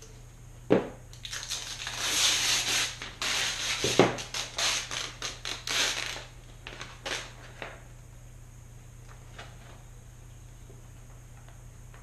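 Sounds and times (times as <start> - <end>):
tape crackling and crinkling: 1.2 - 7.8.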